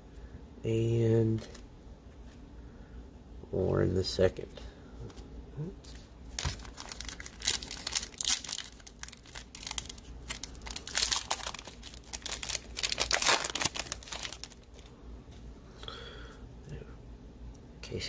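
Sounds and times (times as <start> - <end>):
plastic wrapper tearing and crumpling: 6.3 - 14.9.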